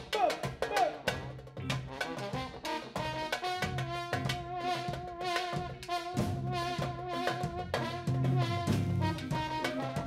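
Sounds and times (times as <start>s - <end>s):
drum kit beat: 0.0s - 10.0s
trombone long held notes: 1.9s - 10.0s.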